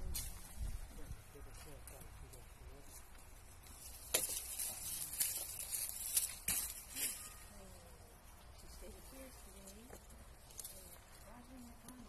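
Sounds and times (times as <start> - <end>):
branches and leaves rustling: 0.0 - 12.0
branches cracking sharply: 3.9 - 7.4.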